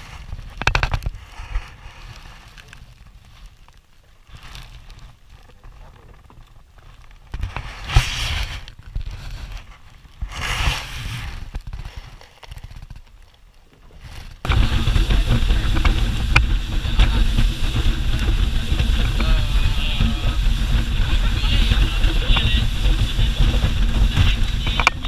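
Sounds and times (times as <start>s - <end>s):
wind and spray: 0.0s - 5.5s, 6.4s - 13.2s, 13.9s - 25.0s
speedboat engine drone: 14.5s - 25.0s.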